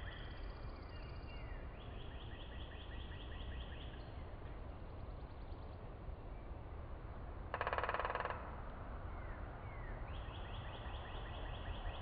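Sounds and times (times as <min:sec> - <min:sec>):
low outdoor background: 0:00.0 - 0:12.0.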